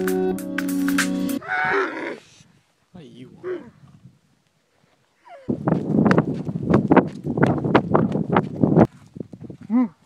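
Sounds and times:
electronic music: 0:00.0 - 0:01.4
camel calling: 0:01.4 - 0:02.4, 0:03.3 - 0:03.8.

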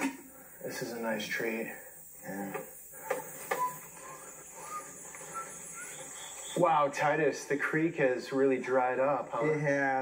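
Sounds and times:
faint bird chirps: 0:00.0 - 0:07.8
steady hiss: 0:00.0 - 0:10.0.

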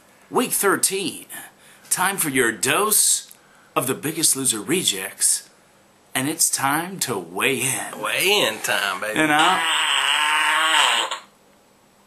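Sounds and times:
man's long wavering vocal sound: 0:07.9 - 0:11.2.

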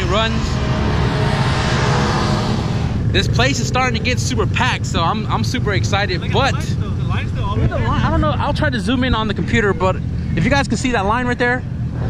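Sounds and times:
car engine running: 0:00.0 - 0:12.0
rush of noise: 0:00.0 - 0:12.0.

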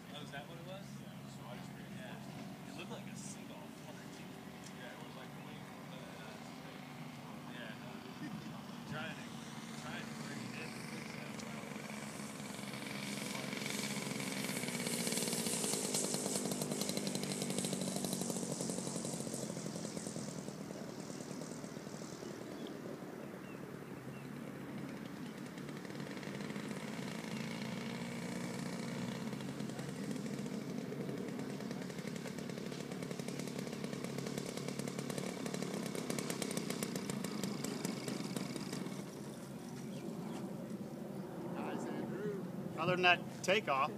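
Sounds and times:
model plane engine: 0:00.0 - 0:43.9.

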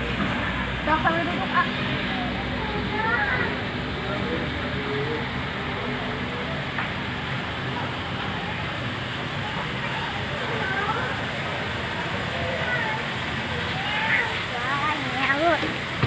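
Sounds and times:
faint distant voices: 0:00.0 - 0:16.0
steady background noise: 0:00.0 - 0:16.0.

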